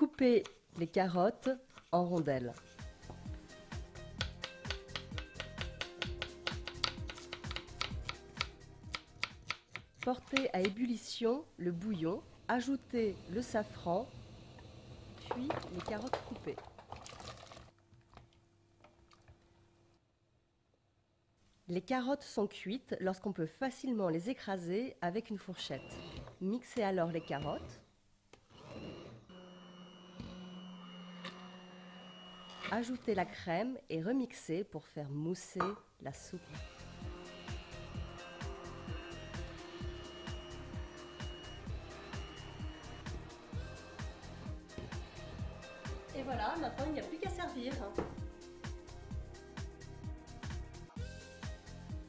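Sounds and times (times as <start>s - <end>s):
background music: 2.0s - 13.6s, 35.9s - 52.0s
knife tapping on cutting board: 4.2s - 8.5s
immersion blender motor whine: 28.5s - 33.2s, 36.4s - 46.3s.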